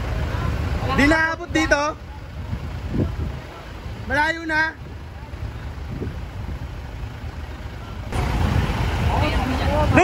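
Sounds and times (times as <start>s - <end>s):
faint voices: 0.0s - 10.0s
fire truck engines rumbling: 0.0s - 10.0s.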